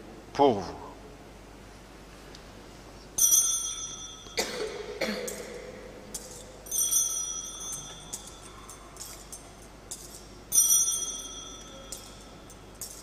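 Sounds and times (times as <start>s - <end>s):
altar bell ringing: 3.2s - 4.6s, 6.1s - 13.0s.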